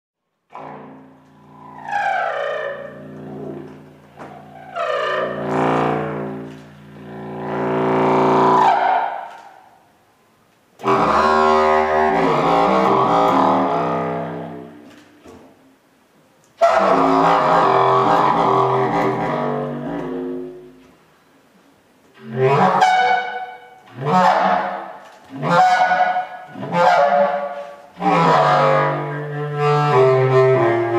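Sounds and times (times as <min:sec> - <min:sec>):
contrabass clarinet low notes: 0:00.5 - 0:09.6, 0:10.8 - 0:15.4, 0:16.6 - 0:21.0, 0:22.1 - 0:30.9.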